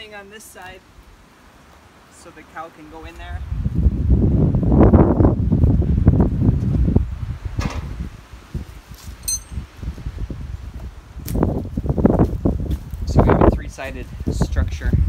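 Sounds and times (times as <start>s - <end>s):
high clink: 9.2s - 9.7s.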